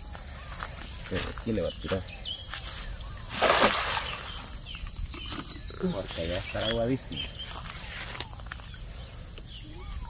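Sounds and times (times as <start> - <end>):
net splashing into water: 3.3 - 4.4.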